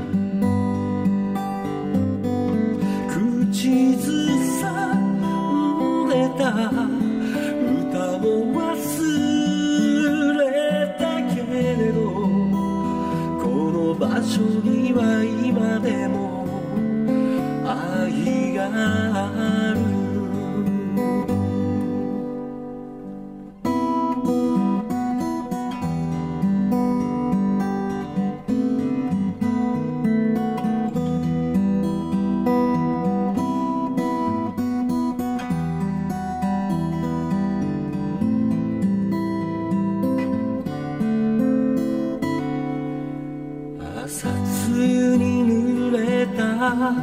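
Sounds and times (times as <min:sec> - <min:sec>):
acoustic guitar playing: 0:00.0 - 0:47.0
person singing: 0:02.8 - 0:22.4, 0:43.8 - 0:47.0.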